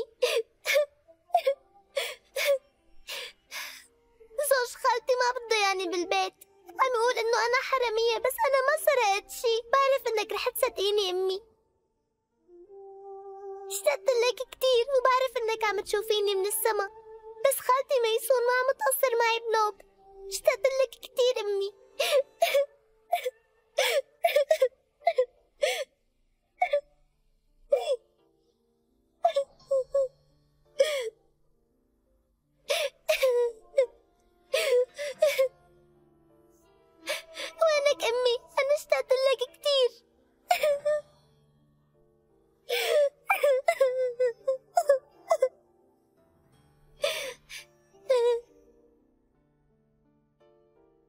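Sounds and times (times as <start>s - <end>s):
girl crying: 0.0s - 3.7s, 13.7s - 19.7s, 20.3s - 25.9s, 26.6s - 26.8s, 27.7s - 28.0s, 29.2s - 30.1s, 32.7s - 33.9s, 34.5s - 35.5s, 37.0s - 39.9s, 40.5s - 41.0s, 42.7s - 45.5s, 47.0s - 48.5s
soft background music: 0.0s - 51.0s.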